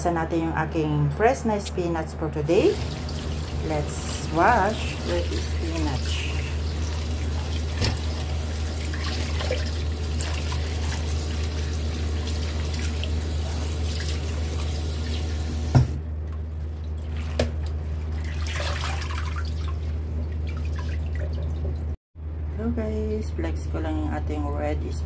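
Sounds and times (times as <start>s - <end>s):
tap water running into bowl: 2.7s - 16.0s.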